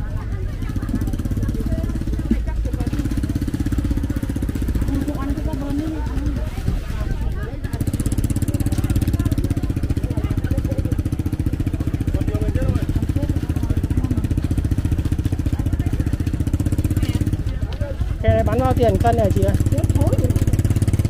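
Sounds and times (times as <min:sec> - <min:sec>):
engine idling loudly: 0:00.0 - 0:21.0
people talking: 0:00.0 - 0:21.0.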